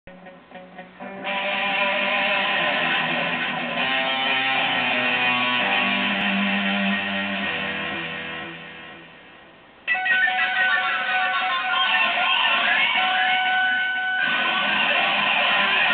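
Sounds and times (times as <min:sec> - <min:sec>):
electric guitar notes and chords: 0:00.1 - 0:15.9.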